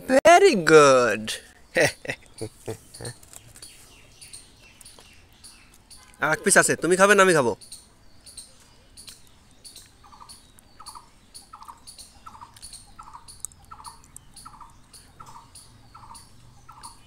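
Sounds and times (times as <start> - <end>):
small birds chirping: 0.0 - 17.0.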